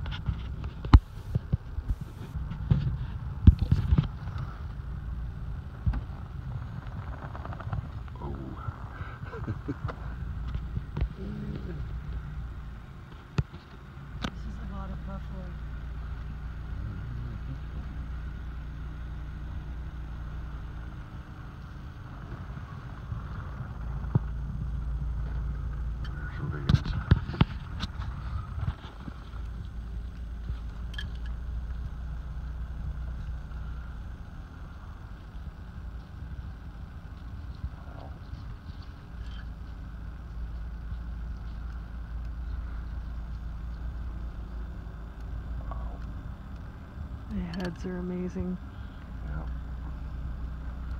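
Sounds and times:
car engine humming from inside: 0:00.0 - 0:50.9.

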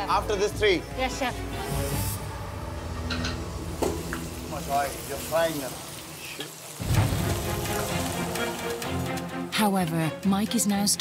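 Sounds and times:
background music with low bass: 0:00.0 - 0:05.4
scallops sizzling in a pan: 0:01.1 - 0:09.4.

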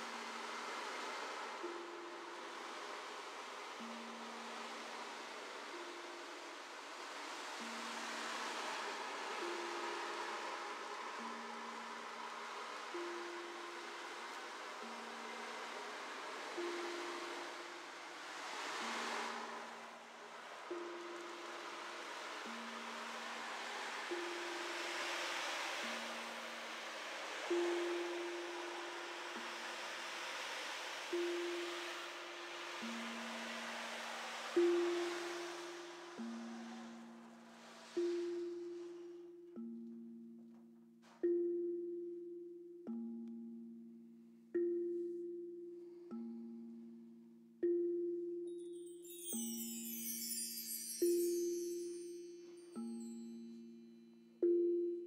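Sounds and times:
soft rushing wash: 0:00.0 - 0:39.4
struck sound-bath instruments ringing: 0:47.6 - 0:55.0.

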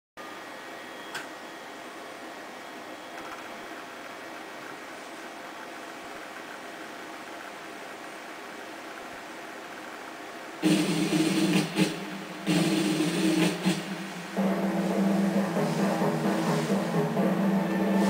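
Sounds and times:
faint thin whining tones: 0:00.2 - 0:08.3
videotape hiss: 0:00.2 - 0:18.0
click: 0:01.1 - 0:01.3.

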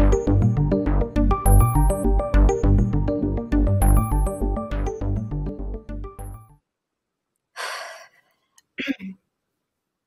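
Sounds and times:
woman breathing: 0:07.5 - 0:08.6.

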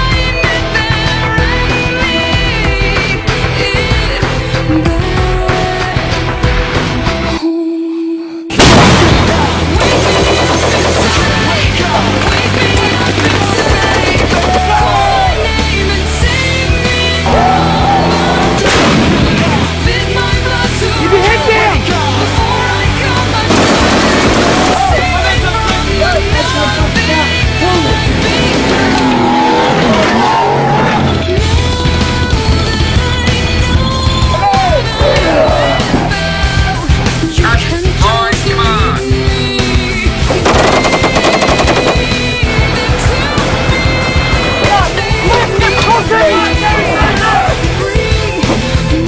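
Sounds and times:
loud rock music: 0:00.0 - 0:07.4, 0:08.5 - 0:49.0
gunshot: 0:08.6 - 0:09.7, 0:18.6 - 0:19.6
automatic gunfire: 0:08.6 - 0:14.9, 0:23.5 - 0:25.1, 0:40.3 - 0:42.8.

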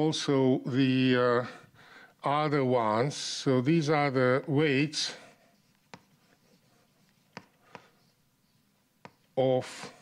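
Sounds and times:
chalk scratching on blackboard: 0:05.0 - 0:10.0
chalk tapping on board: 0:05.5 - 0:08.2, 0:09.0 - 0:10.0.

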